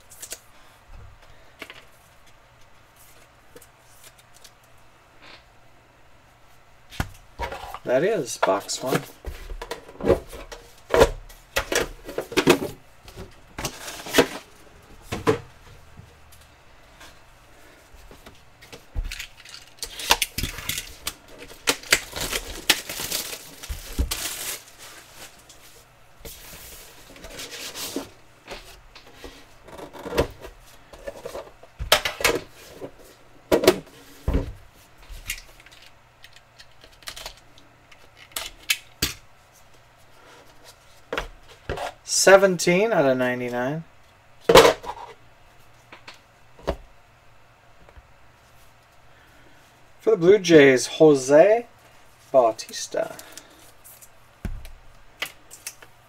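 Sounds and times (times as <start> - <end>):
rustling and sliding: 22.9 - 29.6.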